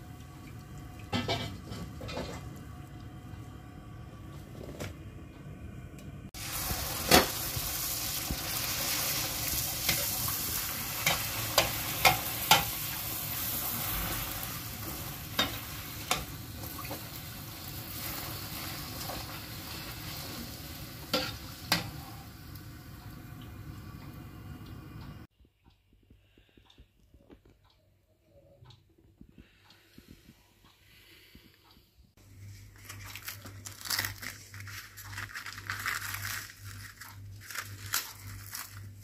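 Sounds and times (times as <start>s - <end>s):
oil sizzling: 6.4s - 25.3s.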